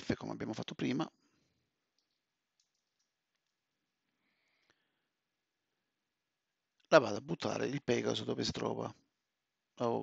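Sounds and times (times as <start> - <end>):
faint clicks: 1.9 - 3.6.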